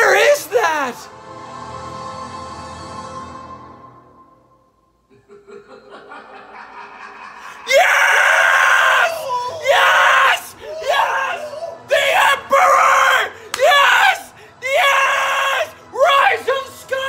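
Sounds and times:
man screaming: 7.5 - 17.0.

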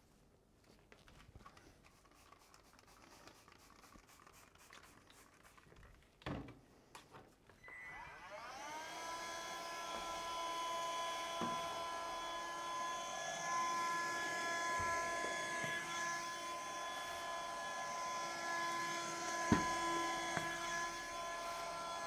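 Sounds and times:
window vacuum whine: 7.6 - 22.0.

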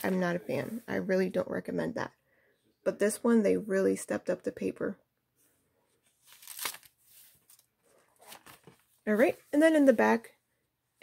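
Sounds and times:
book pages turning: 6.0 - 9.0.

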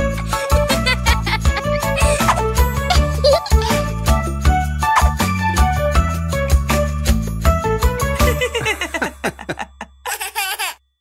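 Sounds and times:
baby and children giggling: 0.5 - 3.9, 8.2 - 10.8.

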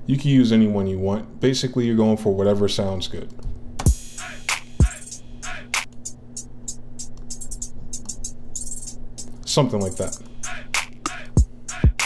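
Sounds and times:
flanged hi-hat ticks: 3.9 - 12.0.

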